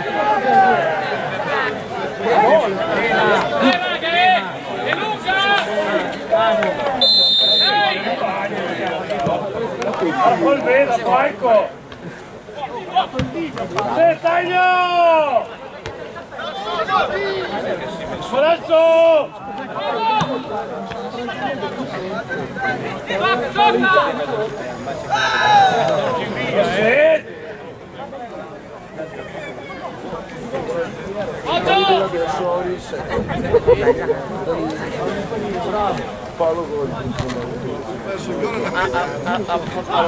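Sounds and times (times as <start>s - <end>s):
people shouting and talking: 0.0s - 40.0s
referee's whistle blast: 7.0s - 8.0s.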